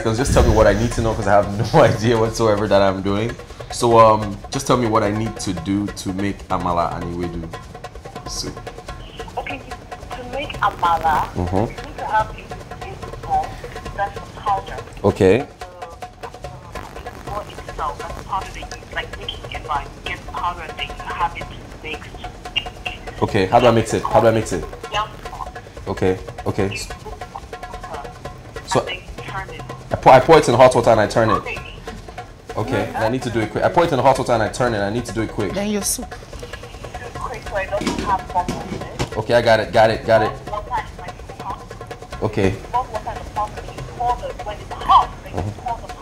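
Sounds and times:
people talking: 0.0s - 7.5s, 8.3s - 16.0s, 16.6s - 28.1s, 28.7s - 46.0s
person talking over the phone: 16.7s - 25.4s, 30.2s - 31.9s, 42.8s - 45.9s.

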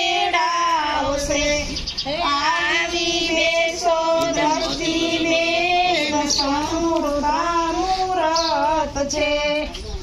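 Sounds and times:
women singing high wavering notes: 0.0s - 9.8s.

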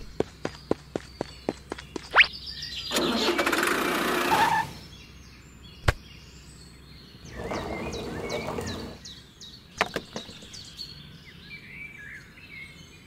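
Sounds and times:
toy tractor engine rattling: 2.9s - 4.6s.

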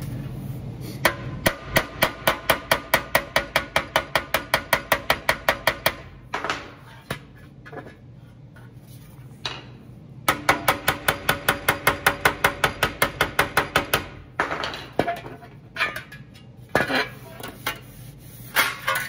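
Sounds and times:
hammer tapping sheet metal: 10.3s - 15.3s.

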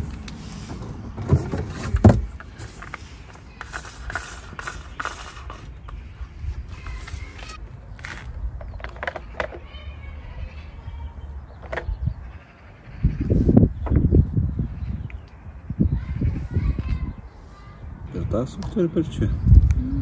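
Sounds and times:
plastic parts rustling and knocking: 0.0s - 9.7s, 11.6s - 12.0s.

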